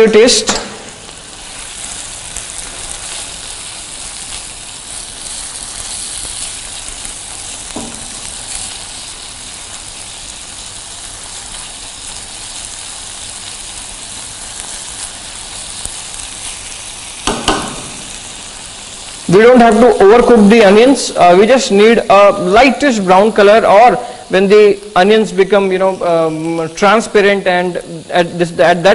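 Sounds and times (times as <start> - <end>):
onions frying in oil: 0.0 - 28.9.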